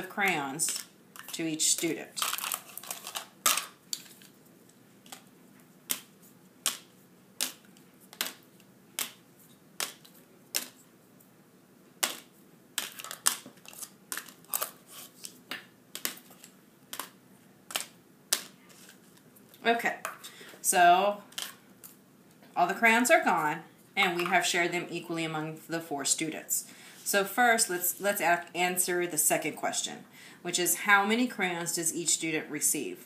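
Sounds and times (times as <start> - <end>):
crayons clicking onto paper plates: 9.8 - 10.8, 12.0 - 19.2.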